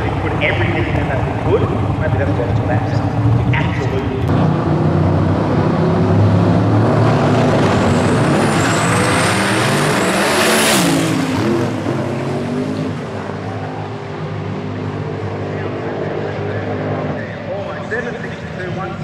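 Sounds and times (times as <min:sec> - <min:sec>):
drag race car engines: 0:00.0 - 0:19.0.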